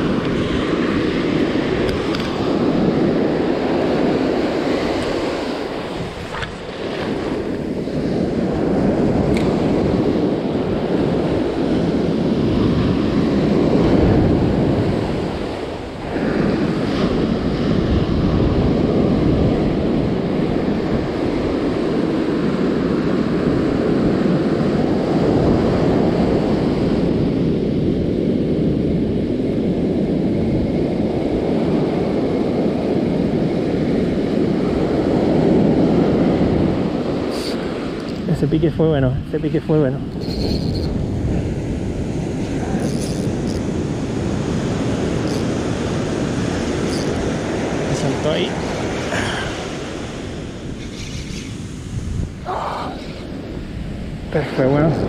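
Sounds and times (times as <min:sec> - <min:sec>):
surf breaking on a beach: 0:00.0 - 0:55.0
wind buffeting microphone: 0:00.0 - 0:55.0.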